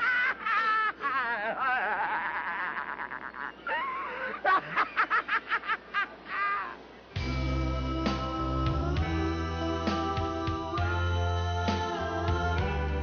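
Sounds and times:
person laughing: 0:00.0 - 0:06.8
music with strong bass line: 0:07.2 - 0:13.0.

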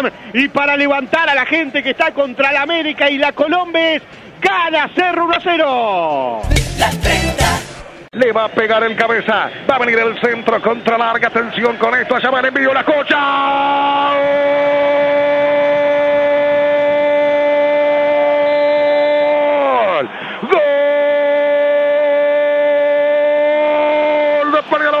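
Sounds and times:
commentator's long goal shout: 0:12.8 - 0:25.0.

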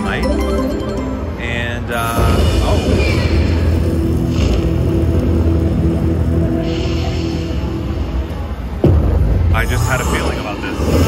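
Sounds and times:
slot machine music low tones: 0:00.0 - 0:06.5.

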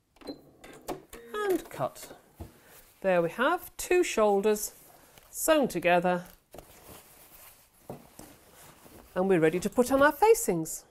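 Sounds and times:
fabric rustling: 0:01.8 - 0:10.6.

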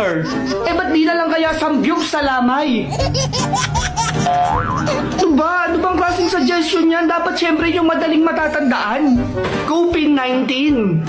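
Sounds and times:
cartoon comedy sound effect: 0:04.1 - 0:05.4.

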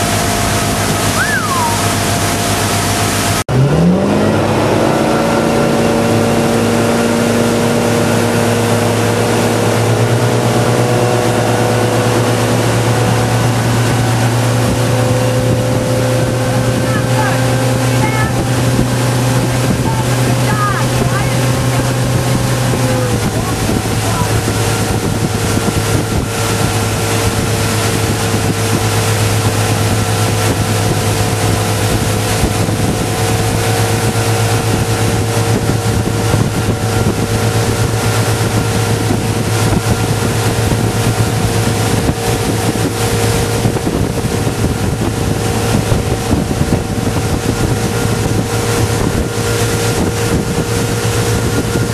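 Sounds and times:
motorboat engine running: 0:00.0 - 0:51.9
wind on microphone: 0:00.0 - 0:51.9.

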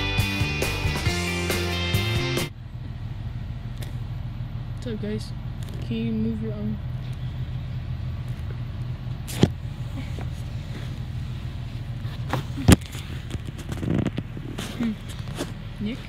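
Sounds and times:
bus engine and road rumble: 0:02.5 - 0:16.0.

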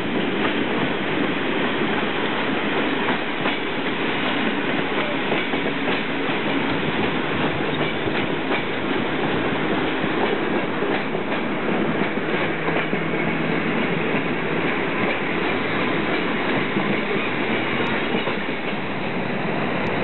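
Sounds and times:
train wheels rumbling on rails: 0:00.0 - 0:20.0
sharp clacks over rail joints: 0:07.0 - 0:08.9.

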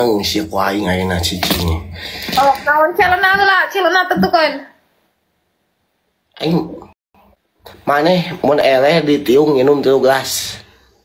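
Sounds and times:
woman talking in a high voice: 0:02.4 - 0:04.8.

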